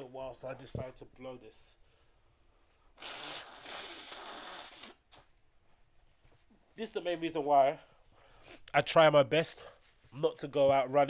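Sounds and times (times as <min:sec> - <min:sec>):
person blowing nose: 0:02.9 - 0:05.2.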